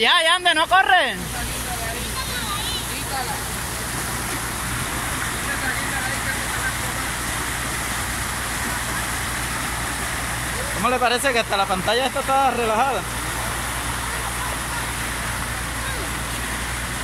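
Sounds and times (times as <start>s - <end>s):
water rushing down channel: 0.0s - 17.0s.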